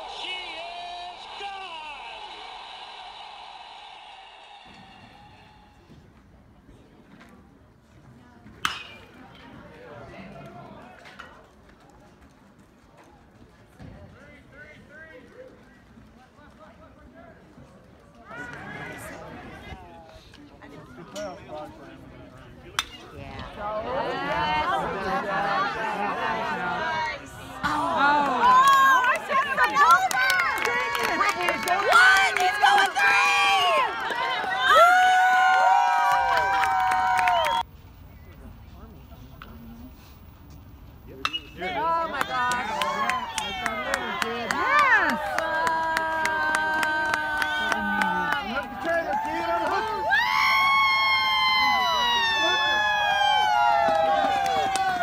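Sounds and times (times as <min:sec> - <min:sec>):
spectators shouting and cheering: 0:00.0 - 0:06.0, 0:18.2 - 0:20.9, 0:23.1 - 0:38.1, 0:41.2 - 0:55.0.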